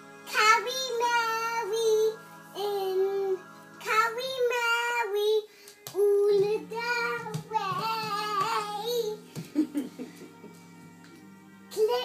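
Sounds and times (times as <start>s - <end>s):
girl singing long held notes: 0.2s - 9.2s.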